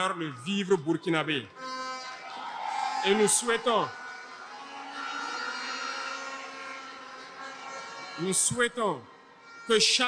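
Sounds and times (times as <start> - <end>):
droning held tones: 1.6 - 9.6.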